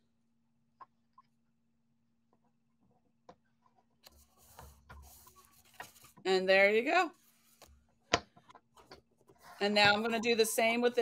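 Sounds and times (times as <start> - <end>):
paper card handling: 4.0 - 6.2.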